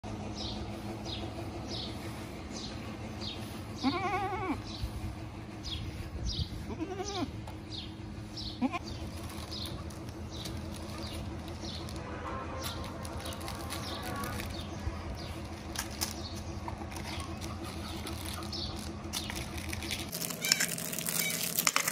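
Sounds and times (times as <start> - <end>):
goat kid bleating: 3.8 - 4.8, 6.5 - 7.4, 8.5 - 8.9, 20.4 - 20.6.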